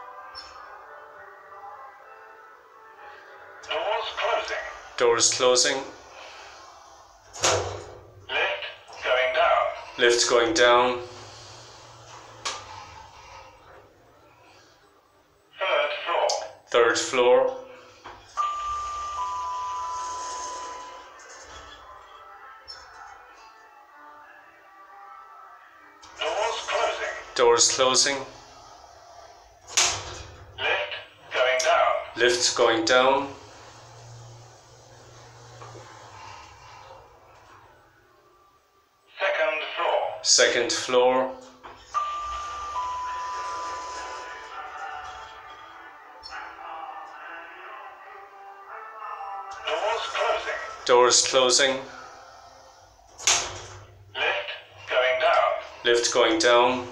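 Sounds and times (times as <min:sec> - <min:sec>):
lift arrival chime: 0:18.2 - 0:23.0, 0:41.7 - 0:46.6.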